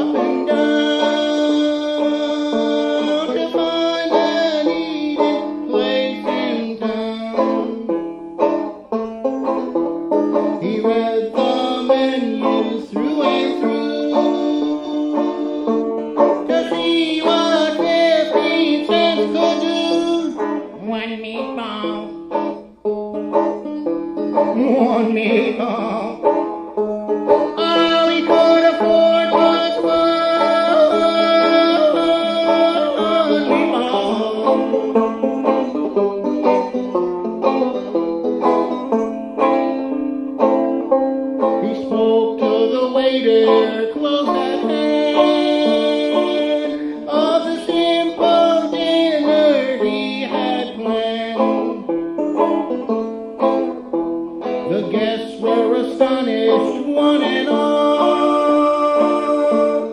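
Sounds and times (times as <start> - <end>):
banjo playing: 0.0 - 59.9.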